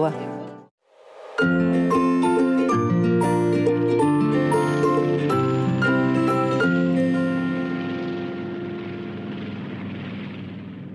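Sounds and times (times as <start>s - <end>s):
propeller plane engine drone: 6.6s - 10.9s.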